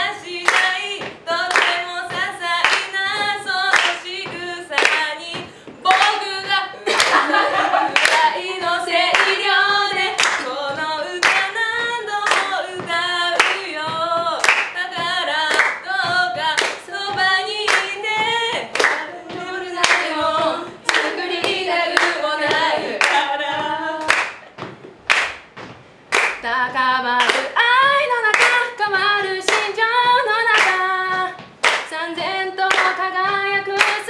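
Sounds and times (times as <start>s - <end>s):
women singing unaccompanied: 0.0s - 24.4s, 26.2s - 34.0s
hand claps: 0.1s - 26.5s, 27.2s - 34.0s.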